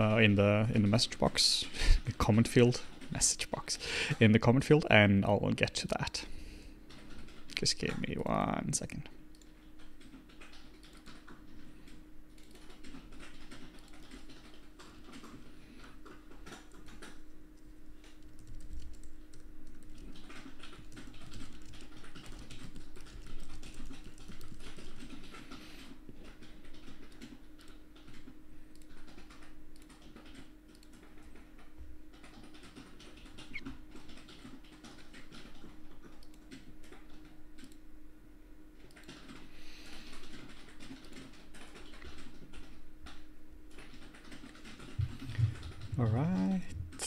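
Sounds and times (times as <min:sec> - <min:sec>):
faint steady hum: 0:00.0 - 0:47.0
keyboard typing clicks: 0:09.3 - 0:15.4, 0:16.0 - 0:25.6, 0:26.2 - 0:31.4, 0:32.1 - 0:37.8.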